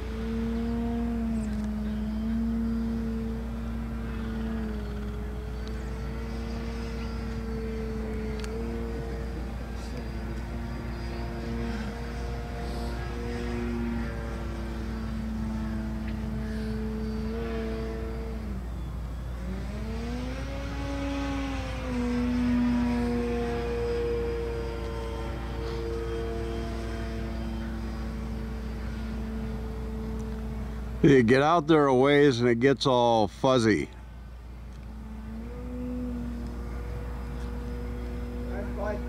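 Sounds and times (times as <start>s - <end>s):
model biplane motor droning: 0.0s - 32.2s, 33.8s - 39.0s.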